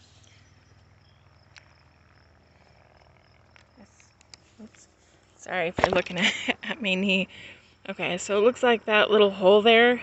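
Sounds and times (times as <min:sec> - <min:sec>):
high-pitched insect chirring: 0:00.0 - 0:04.9.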